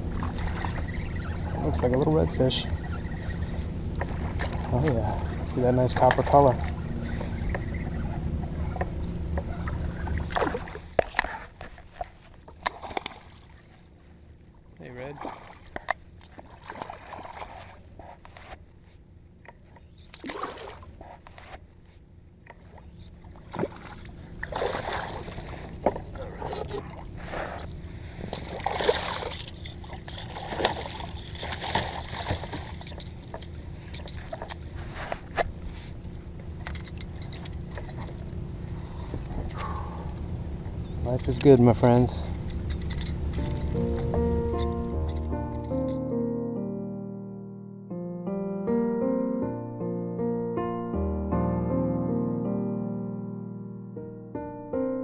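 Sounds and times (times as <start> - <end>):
fish thrashing and splashing water: 10.0 - 11.2, 12.0 - 13.8, 15.2 - 18.3, 19.8 - 21.0, 22.7 - 34.7.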